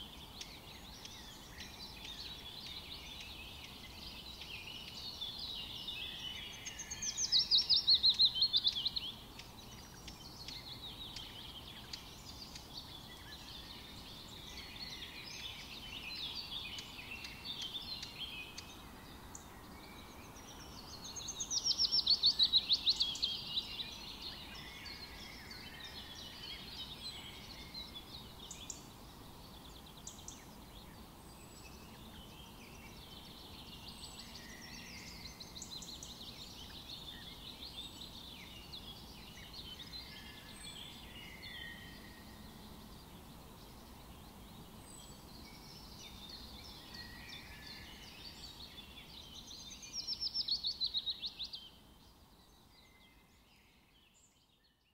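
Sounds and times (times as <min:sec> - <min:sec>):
faint steady hiss: 0:00.0 - 0:54.9
small birds singing and chirping: 0:00.0 - 0:54.9.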